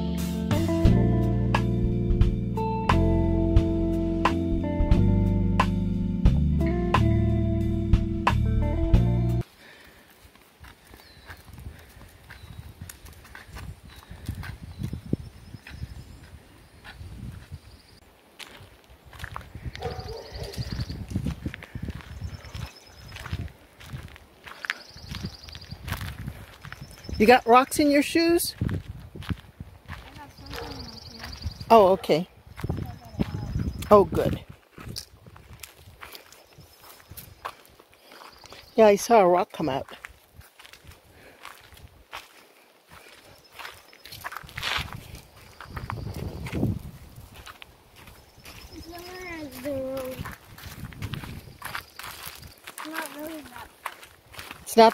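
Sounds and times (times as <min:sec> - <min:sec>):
footsteps crunching on gravel: 0:09.4 - 0:54.9.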